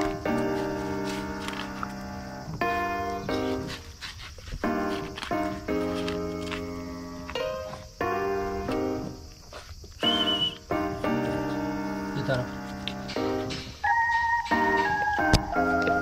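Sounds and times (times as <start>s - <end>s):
keyboard chords: 0.0s - 3.7s, 4.7s - 9.4s, 10.0s - 16.0s.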